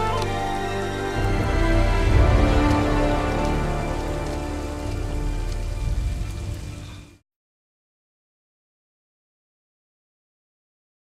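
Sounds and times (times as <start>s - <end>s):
heavy rain pouring: 0.0s - 7.2s
soft sustained film-score tones: 0.0s - 7.2s.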